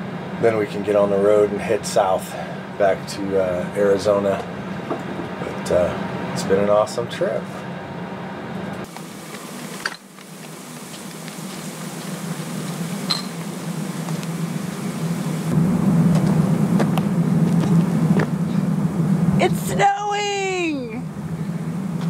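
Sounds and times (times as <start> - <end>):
low mechanical hum: 0.0 - 22.0.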